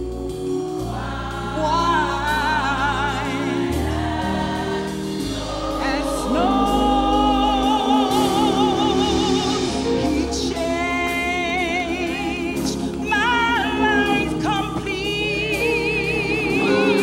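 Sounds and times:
gospel choir singing: 0:00.0 - 0:17.0
woman singing into a microphone: 0:05.8 - 0:17.0.

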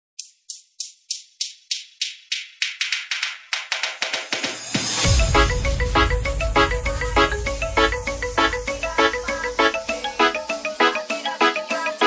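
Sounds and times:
percussion roll speeding up: 0:01.6 - 0:11.9.

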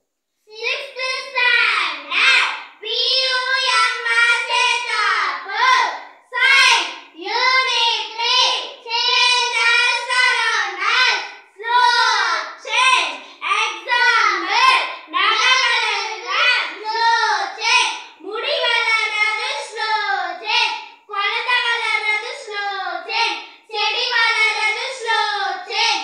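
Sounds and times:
girls singing unaccompanied: 0:00.8 - 0:26.0.

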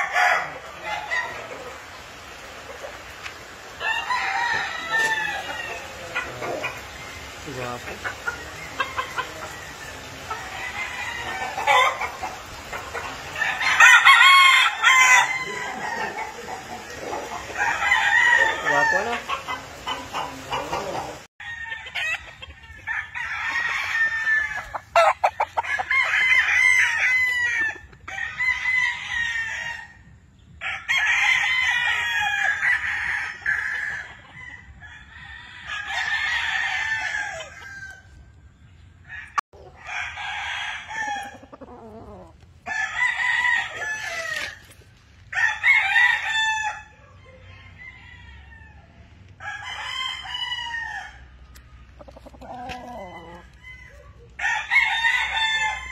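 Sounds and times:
roosters crowing: 0:00.0 - 0:38.4, 0:39.0 - 0:55.9.

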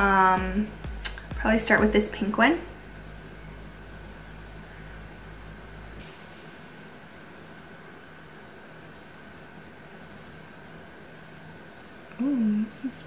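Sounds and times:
faint high whine: 0:00.0 - 0:13.0
low hum: 0:00.0 - 0:13.0
room tone hiss: 0:00.0 - 0:13.0.

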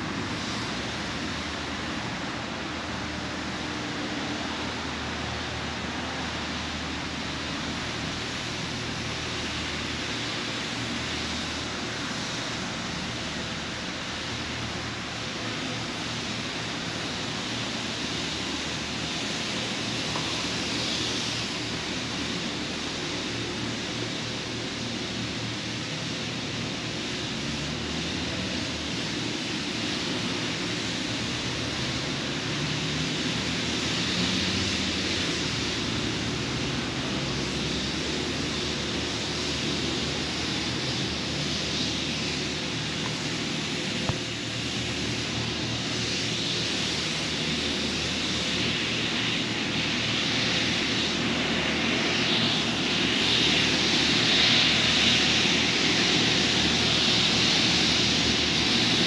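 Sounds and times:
distant traffic: 0:00.0 - 0:59.0.

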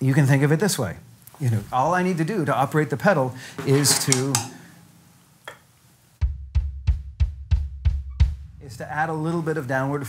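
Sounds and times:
bass drum thuds: 0:06.2 - 0:09.4.

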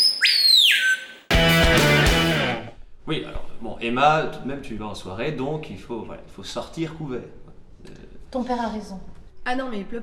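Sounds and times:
songbird whistling: 0:00.0 - 0:01.3
strummed guitar chord: 0:01.3 - 0:02.7.

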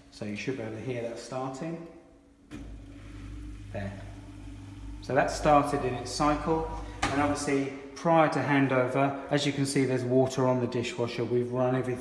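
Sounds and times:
dishwasher low hum: 0:02.5 - 0:09.2.

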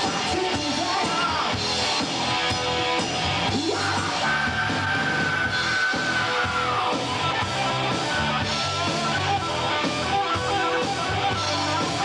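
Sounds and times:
hard rock band playing: 0:00.0 - 0:12.0.

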